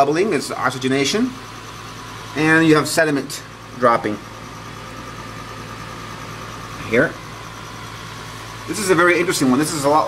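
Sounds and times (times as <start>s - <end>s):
pump humming: 0.0s - 10.0s.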